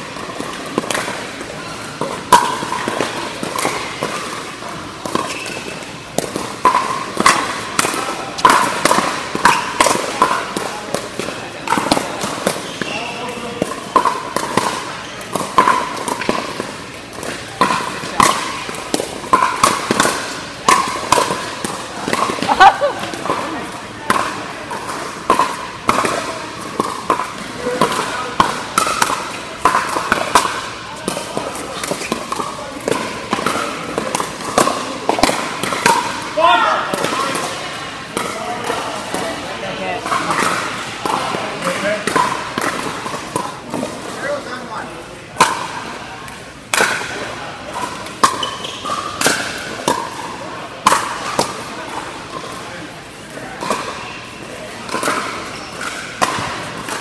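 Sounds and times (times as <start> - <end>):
paddles striking pickleball: 0.1 - 54.0, 54.6 - 57.0.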